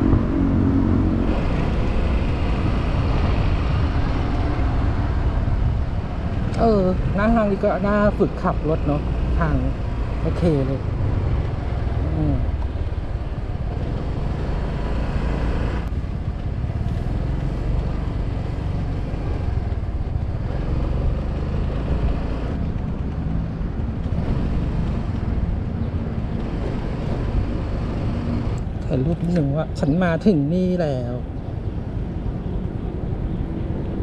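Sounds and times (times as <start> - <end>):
wind on microphone: 0.0 - 34.0.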